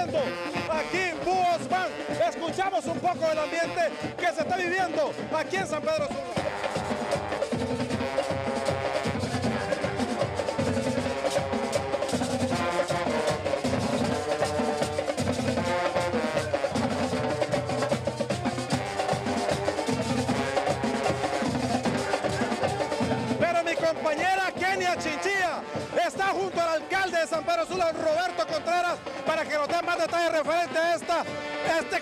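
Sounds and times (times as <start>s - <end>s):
man's voice: 0.0s - 6.7s, 9.2s - 10.6s, 21.3s - 32.0s
snare and bass drums: 0.0s - 32.0s
trombones: 0.0s - 32.0s.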